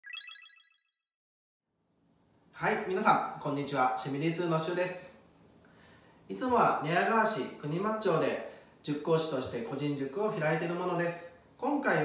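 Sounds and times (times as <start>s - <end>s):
bright electronic chime: 0.0s - 0.9s.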